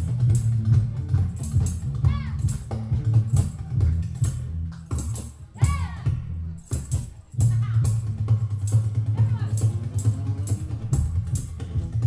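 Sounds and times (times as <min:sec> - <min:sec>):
tambourine jingling: 0:00.0 - 0:03.6, 0:06.6 - 0:11.6
acoustic band music: 0:00.0 - 0:12.0.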